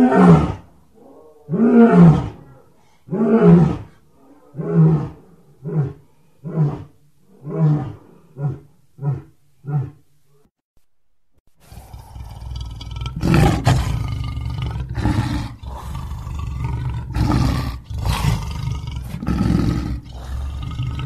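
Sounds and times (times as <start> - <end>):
lion roaring: 0.0 - 10.0, 11.6 - 21.0
lion grunting calls: 11.6 - 21.0.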